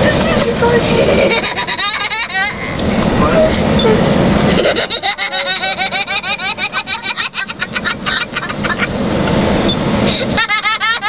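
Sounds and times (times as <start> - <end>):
car cabin road noise: 0.0 - 11.0
boy giggling: 0.6 - 2.8, 3.8 - 8.9, 10.1 - 11.0.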